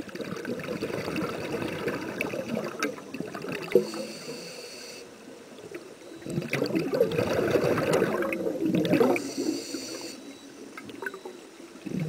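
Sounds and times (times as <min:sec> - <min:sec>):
bubbles gurgling underwater: 0:00.0 - 0:04.0, 0:06.2 - 0:09.4.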